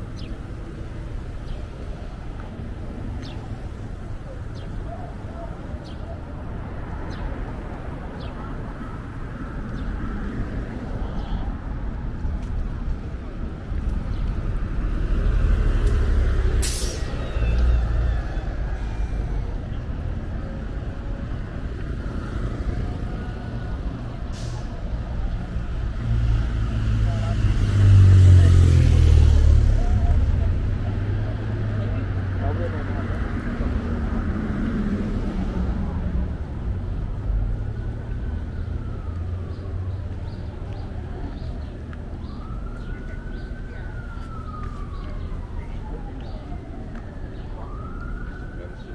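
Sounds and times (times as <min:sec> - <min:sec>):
road traffic rumble: 0:00.0 - 0:48.9
vehicle passing: 0:06.6 - 0:48.9.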